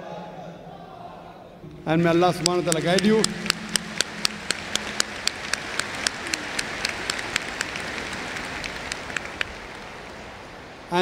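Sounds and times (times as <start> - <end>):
audience applauding: 2.3 - 10.9
single sharp claps: 2.4 - 9.8.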